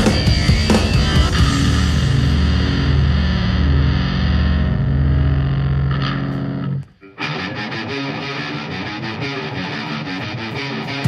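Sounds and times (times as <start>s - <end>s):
distorted electric guitar and bass: 0.0s - 11.0s.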